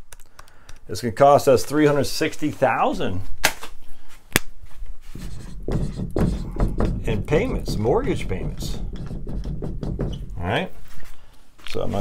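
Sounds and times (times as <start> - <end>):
marker writing on whiteboard: 5.0 - 10.5.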